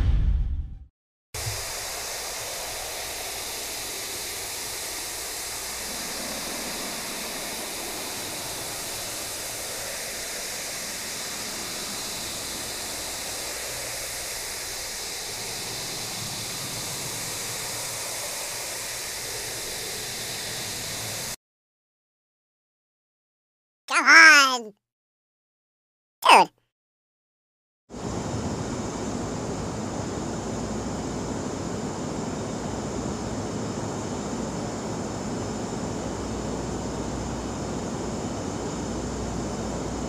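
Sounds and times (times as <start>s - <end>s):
car wash water spray on car: 1.4s - 21.4s.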